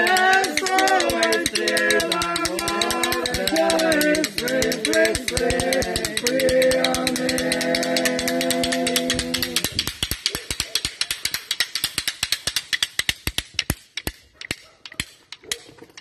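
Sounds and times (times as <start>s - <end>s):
wooden clapper rattle clacking: 0.0s - 16.0s.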